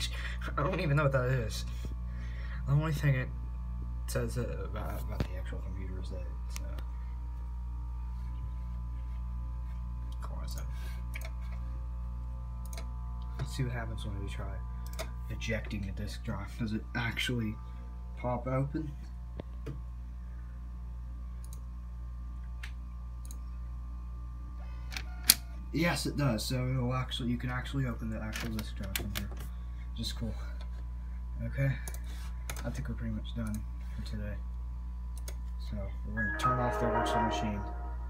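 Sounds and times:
computer low hum: 0.0 - 38.0
computer mouse clicks: 11.1 - 11.4, 14.8 - 15.1, 21.4 - 21.6, 33.4 - 33.6, 35.1 - 35.4
faint high whine: 35.6 - 38.0.

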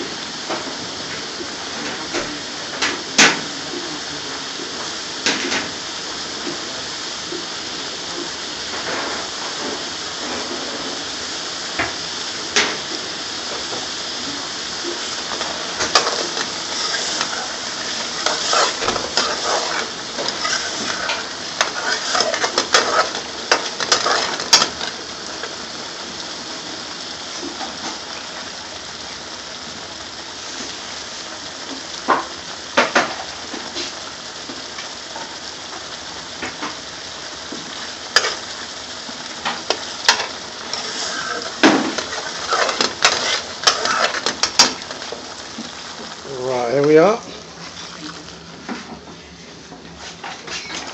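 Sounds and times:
sauce bubbling and sizzling in a pan: 0.0 - 50.9.

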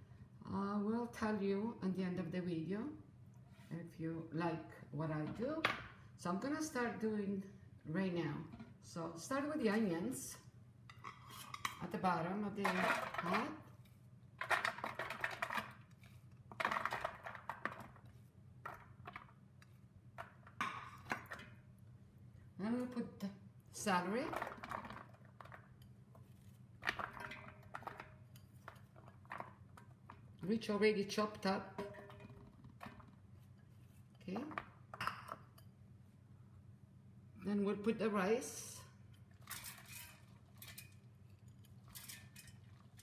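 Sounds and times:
fork scraping ceramic bowl: 11.0 - 11.8.

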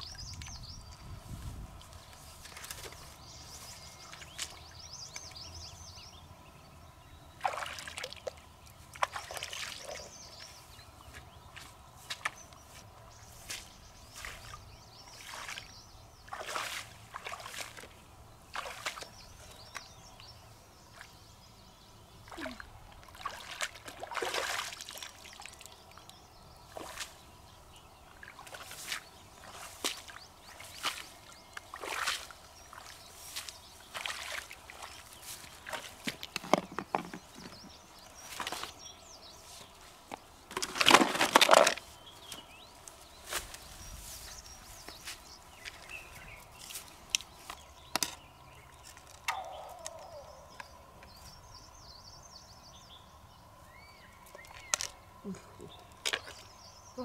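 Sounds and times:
hands splashing in water: 7.4 - 8.4, 22.3 - 25.7, 28.3 - 36.5.

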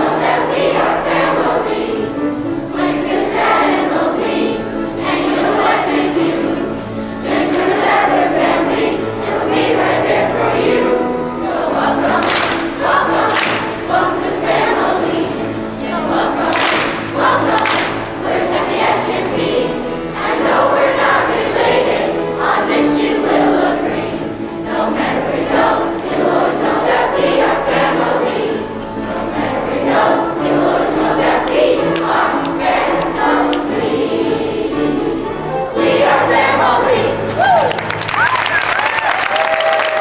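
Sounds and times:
children's chorus singing: 0.0 - 40.0.

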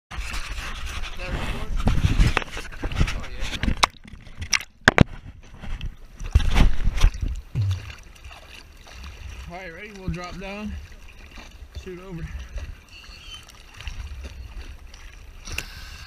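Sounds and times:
water sloshing and splashing: 0.1 - 16.0.

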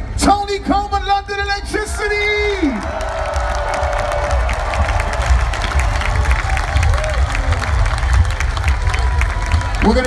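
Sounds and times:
crowd cheering and clapping: 1.9 - 10.0
deep bass rumble: 2.8 - 10.0.

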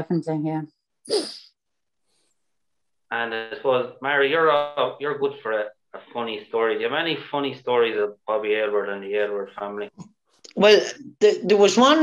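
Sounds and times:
breathy vocal sound falling in pitch: 3.1 - 9.9.

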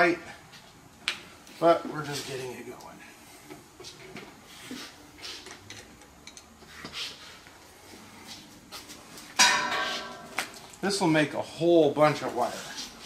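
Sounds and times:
loud metallic clank: 9.4 - 10.4.

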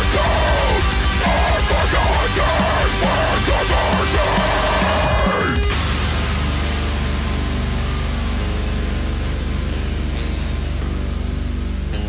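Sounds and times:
heavy metal instrumental: 0.0 - 12.0.

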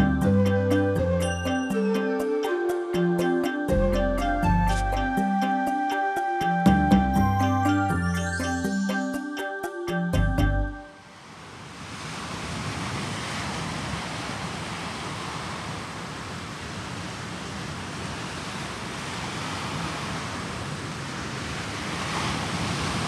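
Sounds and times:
ocean surf rushing: 0.0 - 10.1, 10.8 - 23.0.

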